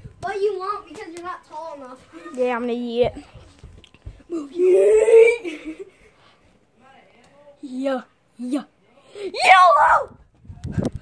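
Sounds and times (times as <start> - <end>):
child crying out: 4.5 - 5.6.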